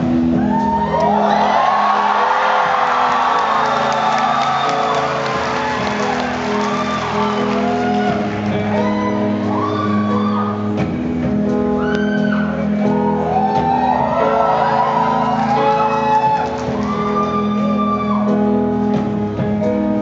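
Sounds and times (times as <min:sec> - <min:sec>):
live rock band playing: 0:00.0 - 0:20.0
audience cheering and whooping: 0:00.2 - 0:10.8, 0:11.6 - 0:18.7.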